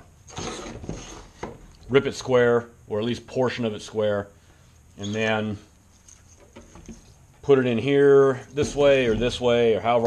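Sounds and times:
wood block scraping on wood: 0:00.3 - 0:01.5.

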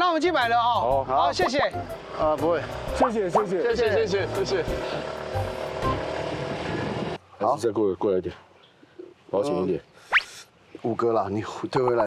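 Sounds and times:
motor scooter engine running: 0:00.6 - 0:07.2.

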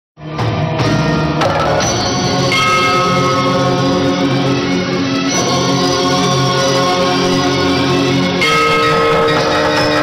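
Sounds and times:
theme music of layered tones: 0:00.2 - 0:10.0.

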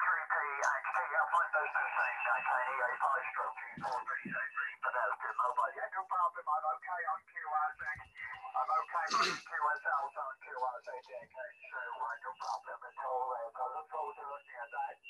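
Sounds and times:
man talking over radio speaker: 0:00.0 - 0:15.0.

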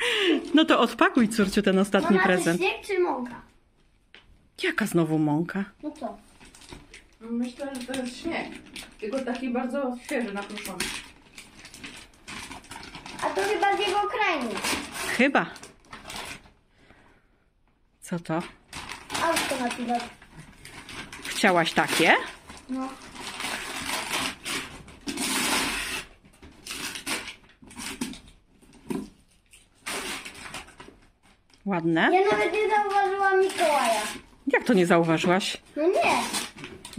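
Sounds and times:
wrapping paper crinkling: 0:00.0 - 0:02.9, 0:05.8 - 0:16.6, 0:18.6 - 0:36.9.

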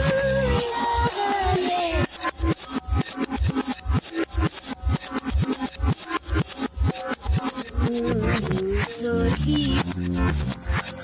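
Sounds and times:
reversed pop music: 0:00.0 - 0:11.0.

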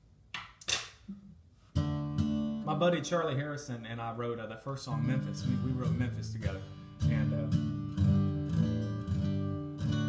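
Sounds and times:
acoustic guitar strumming: 0:01.7 - 0:03.4, 0:04.8 - 0:10.0.

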